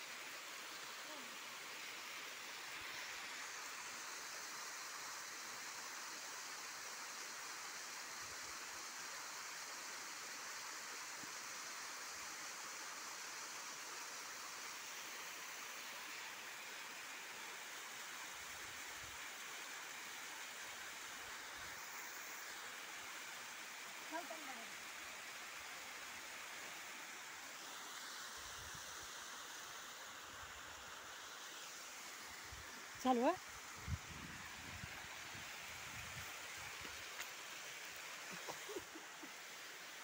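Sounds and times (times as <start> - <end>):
waterfall rushing: 30.3 - 40.0.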